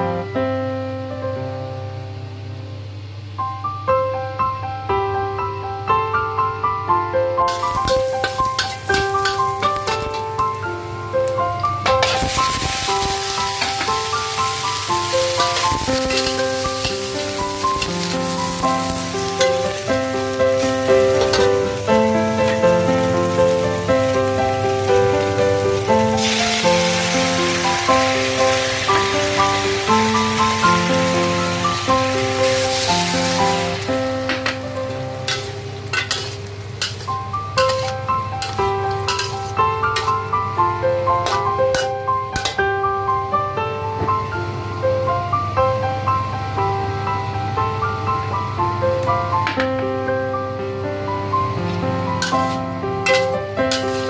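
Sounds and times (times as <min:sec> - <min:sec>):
gentle piano music: 0:00.0 - 0:54.0
food sizzling in a wok: 0:07.5 - 0:42.9, 0:52.2 - 0:54.0.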